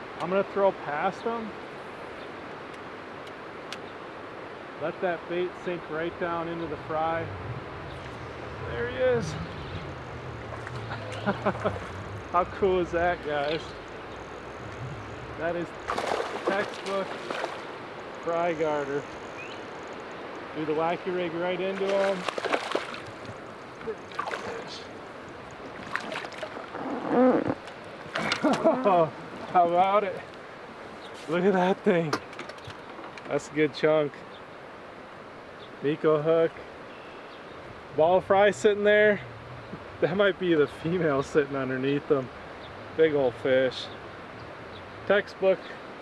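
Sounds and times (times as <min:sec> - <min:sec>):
water sloshing: 0:05.8 - 0:29.7
outdoor hiss: 0:08.0 - 0:21.8.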